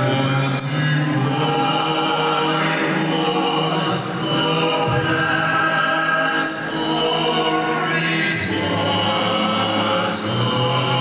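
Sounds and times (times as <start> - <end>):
male quartet singing a cappella: 0.0 - 11.0.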